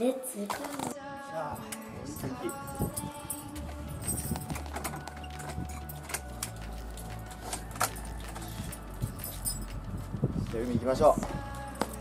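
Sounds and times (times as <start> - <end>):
keys jangling: 1.6 - 10.3
steady low rumble: 2.0 - 12.0
footsteps clicking: 3.0 - 12.0.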